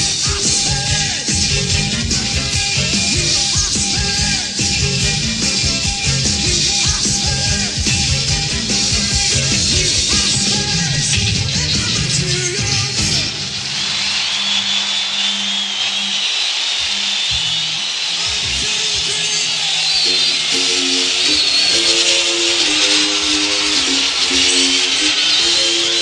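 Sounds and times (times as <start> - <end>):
live band playing: 0.0 - 13.8, 18.2 - 26.0
crowd cheering and whistling: 0.0 - 26.0
repeating pattern of short notes: 20.1 - 26.0.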